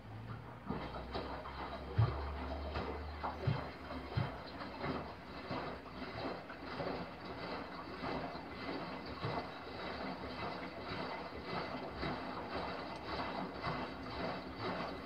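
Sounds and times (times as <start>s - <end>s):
washing machine water swishing: 0.0s - 15.0s.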